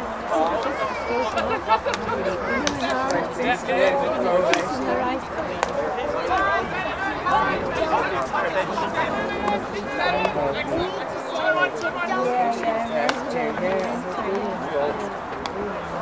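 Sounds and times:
people calling out: 0.0 - 16.0.

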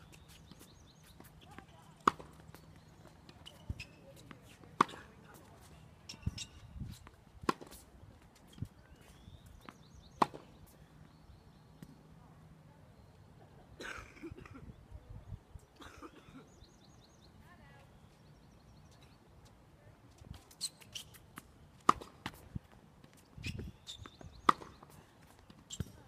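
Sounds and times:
racket hitting tennis ball: 2.0 - 2.4, 7.4 - 7.8, 10.2 - 10.4, 21.8 - 22.4, 24.4 - 24.9.

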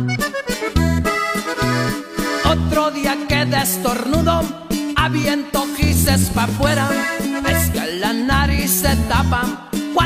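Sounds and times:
accordion melody: 0.0 - 10.0
bass line: 0.0 - 10.0.

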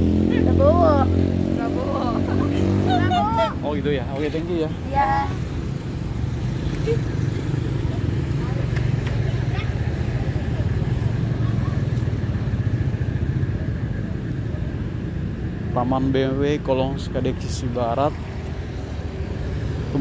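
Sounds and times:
low rumble of city background: 0.0 - 20.0.

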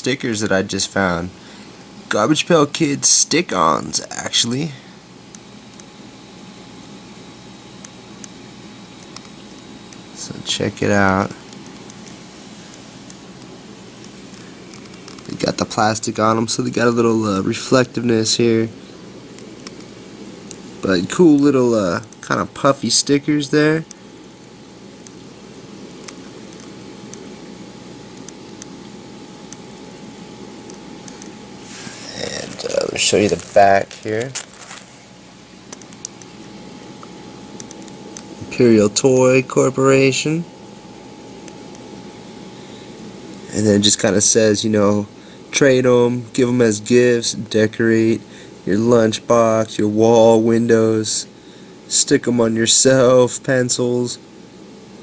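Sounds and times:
faint high whine: 0.0 - 55.0
faint hum: 0.0 - 55.0
room tone hiss: 0.0 - 55.0.

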